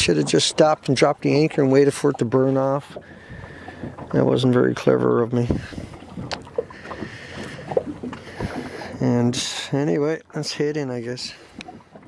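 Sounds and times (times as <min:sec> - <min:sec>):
water lapping against boat hull: 0:00.0 - 0:12.0
wind on microphone: 0:05.4 - 0:09.4.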